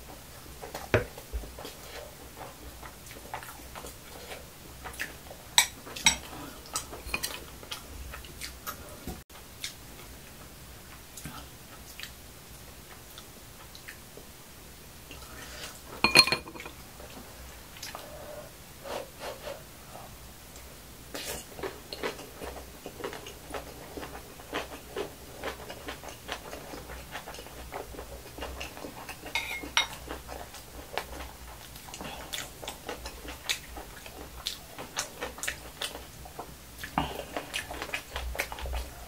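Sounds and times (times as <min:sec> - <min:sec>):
chewing: 0:01.6 - 0:08.9, 0:20.6 - 0:39.0
spoon clinking on glass bowl: 0:16.0 - 0:16.7, 0:29.4 - 0:29.9
spoon scraping pot: 0:16.0 - 0:16.7, 0:29.3 - 0:29.9.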